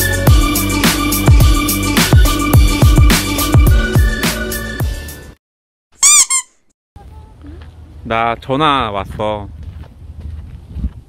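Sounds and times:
background music: 0.0s - 5.4s
high squeaks: 6.0s - 6.7s.

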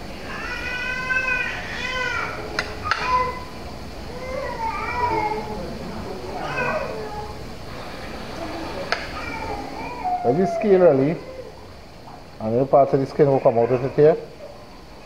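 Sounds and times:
baby wailing: 0.3s - 5.7s, 6.3s - 7.4s, 9.1s - 11.7s, 13.4s - 14.3s.

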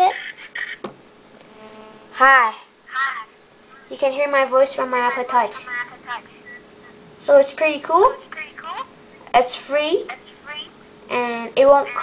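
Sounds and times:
electronic ringtone: 0.0s - 0.8s
faint steady hum: 0.0s - 12.0s.

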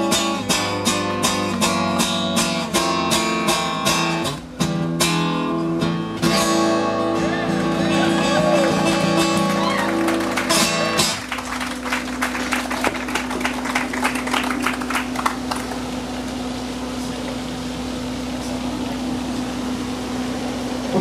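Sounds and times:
audience applauding: 7.9s - 16.2s.

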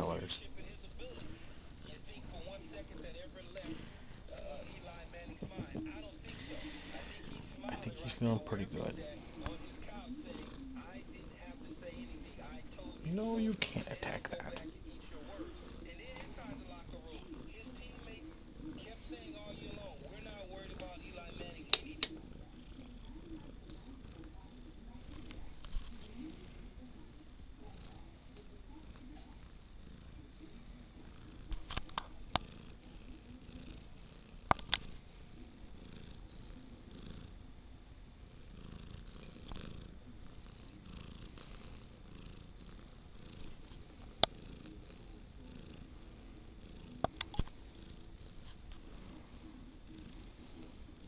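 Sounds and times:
cat purring: 0.0s - 51.0s.

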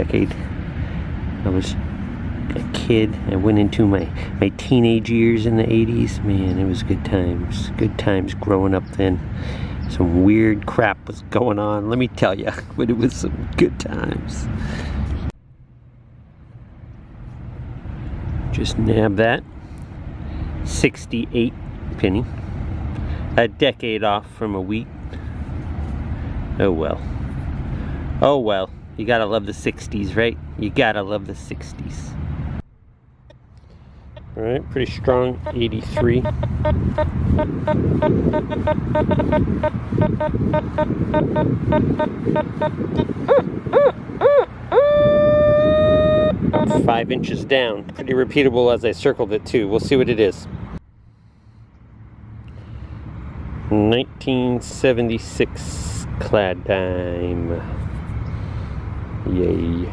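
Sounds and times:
low engine rumble: 0.0s - 59.9s
metal detector steady tone: 35.4s - 42.8s.

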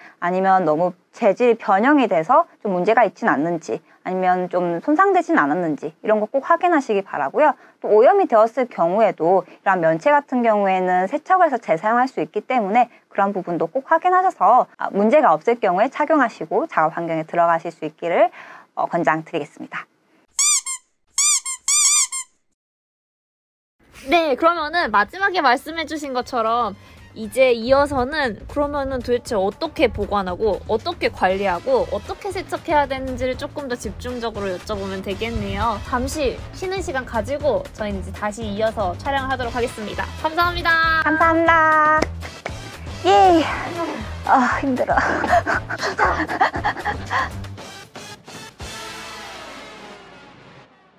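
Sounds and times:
squeaky sound effect: 20.4s - 22.5s
background music: 24.4s - 50.2s
woman laughing: 43.7s - 47.4s.

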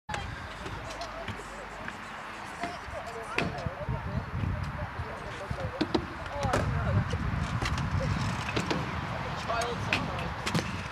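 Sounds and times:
distant voices: 0.1s - 10.9s.

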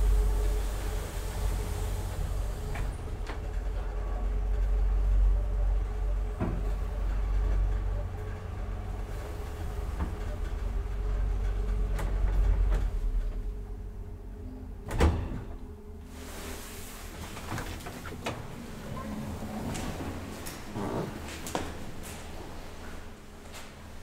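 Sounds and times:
elevator stopping clunk: 0.0s - 15.8s
elevator hum: 0.0s - 24.0s.

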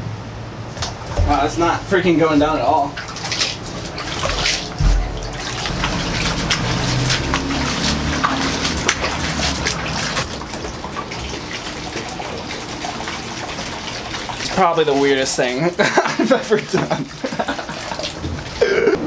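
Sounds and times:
water pouring and splashing: 0.8s - 19.0s
low thump: 4.8s - 6.0s.

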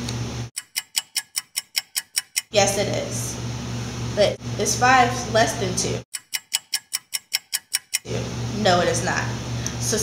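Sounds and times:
room hum: 0.0s - 10.0s
clock ticking quickly: 0.6s - 2.5s, 6.1s - 8.1s.

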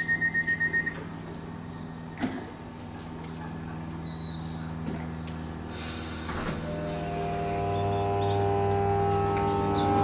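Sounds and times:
train door warning beeps: 0.0s - 1.0s
train electrical hum: 0.0s - 10.0s.

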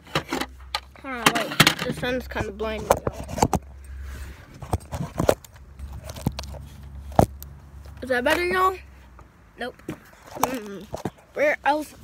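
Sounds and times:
phone handling clicks and knocks: 0.1s - 2.1s.

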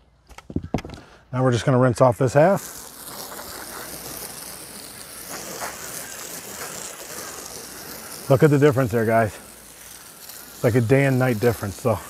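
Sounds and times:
hose spraying water on roof: 1.5s - 12.0s.

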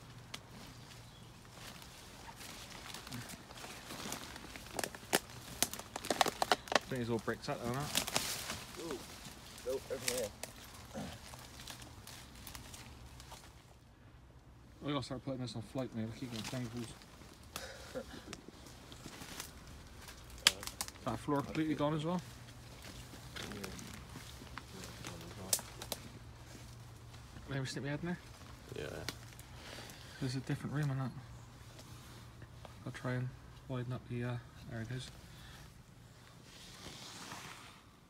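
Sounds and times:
footsteps through undergrowth: 0.0s - 13.8s, 15.7s - 33.7s
twigs snapping: 0.0s - 13.8s, 16.4s - 21.8s, 22.4s - 27.3s, 28.2s - 30.0s
leaves rustling: 0.0s - 38.0s.

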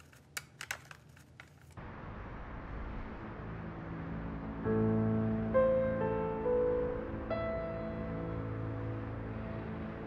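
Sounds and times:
music: 2.6s - 10.0s.

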